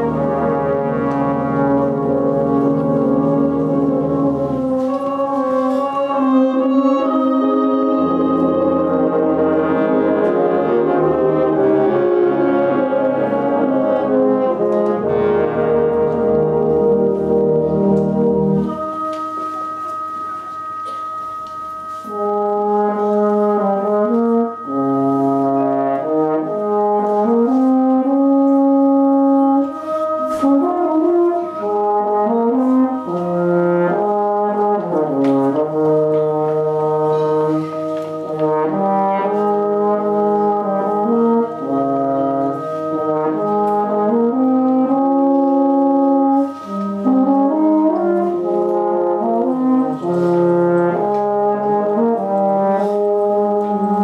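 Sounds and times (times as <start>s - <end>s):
baritone horn solo: 0.0s - 54.0s
brass band playing slow piece: 0.0s - 54.0s.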